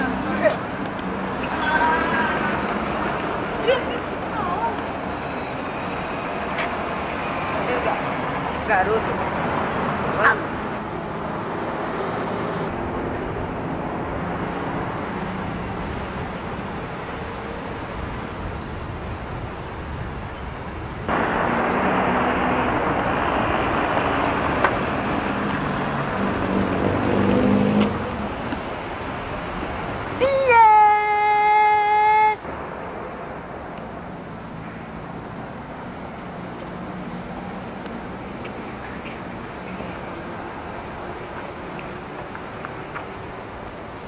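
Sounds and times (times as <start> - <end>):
street traffic noise: 0.0 - 44.0.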